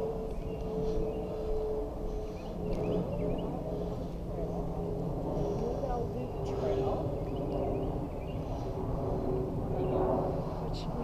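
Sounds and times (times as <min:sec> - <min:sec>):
steady low drone: 0:00.0 - 0:11.0.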